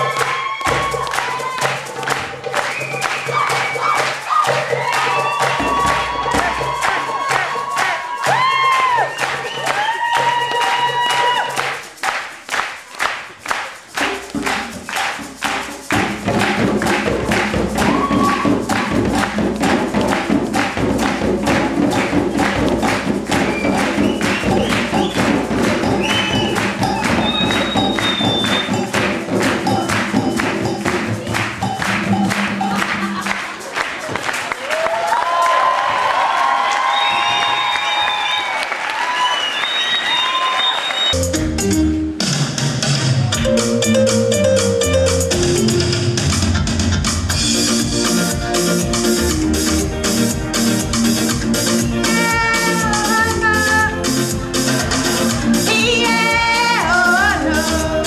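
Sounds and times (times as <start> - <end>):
djembe hand drums rhythm: 0.0 - 34.4, 41.2 - 58.0
hand-clapping: 0.0 - 41.2.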